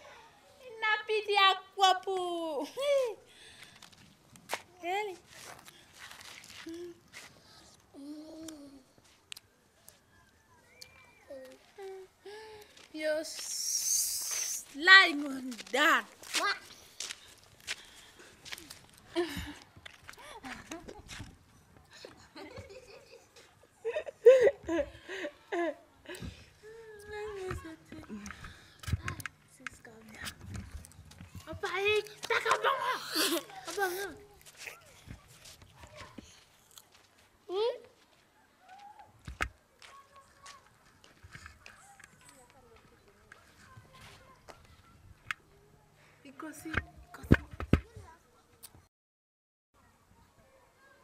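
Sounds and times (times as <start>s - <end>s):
child speaking: 13.0s - 13.4s, 14.6s - 16.7s, 31.4s - 35.0s, 37.5s - 37.9s, 49.8s - 51.0s
children's voices: 31.4s - 36.5s, 37.5s - 48.8s, 49.8s - 51.0s.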